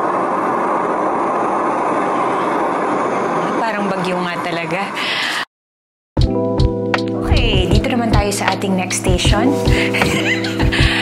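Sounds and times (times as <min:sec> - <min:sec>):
sound machine rushing noise: 0:00.0 - 0:05.0.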